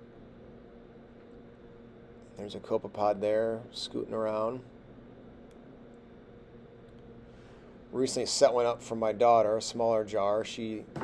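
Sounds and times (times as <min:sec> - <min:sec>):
faint steady hum and hiss: 0:00.0 - 0:11.0.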